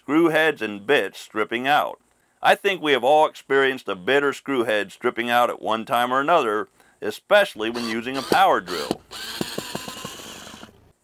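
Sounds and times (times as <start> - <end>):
drill bit slipping clicks: 7.7 - 10.9
cordless drill motor whining: 7.7 - 11.0.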